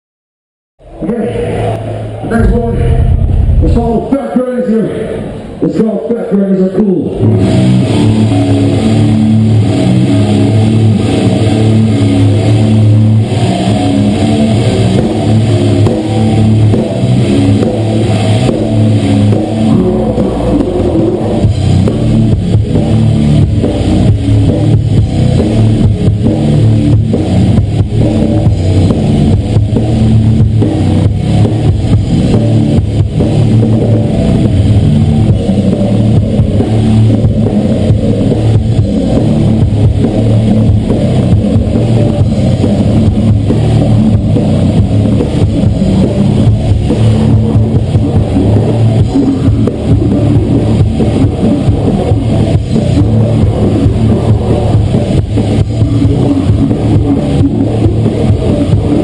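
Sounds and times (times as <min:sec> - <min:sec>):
distorted guitar and bass riffing: 0:00.8 - 0:59.0
fast dense drumming: 0:02.3 - 0:04.6, 0:07.2 - 0:59.0.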